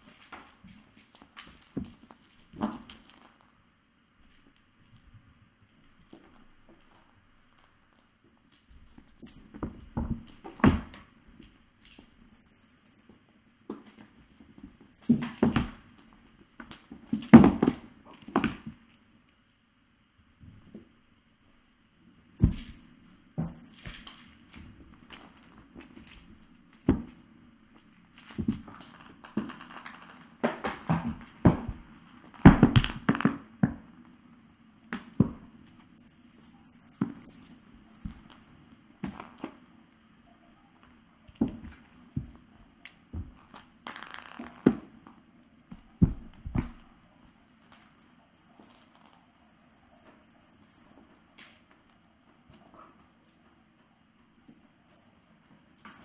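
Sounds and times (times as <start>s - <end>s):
cat toy bell jingling: 9.2s - 9.5s, 12.3s - 13.2s, 15.0s - 15.4s, 22.4s - 24.3s, 36.0s - 38.6s, 47.7s - 48.8s, 49.4s - 51.0s, 54.9s - 55.2s.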